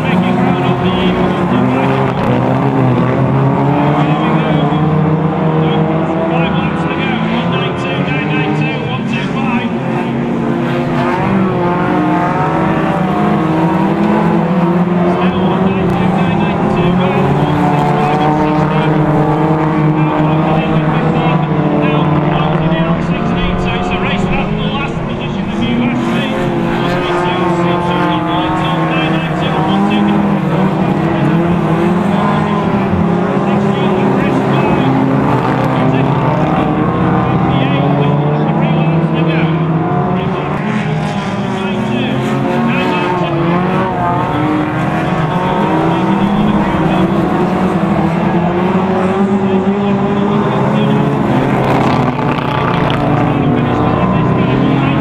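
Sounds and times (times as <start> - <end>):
race car engines running hard: 0.0 - 55.0.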